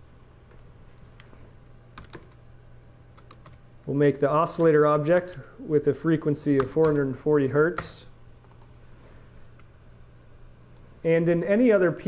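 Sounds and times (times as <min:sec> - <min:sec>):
faint steady hum: 0:00.0 - 0:12.0
keyboard keystrokes: 0:06.6 - 0:07.0.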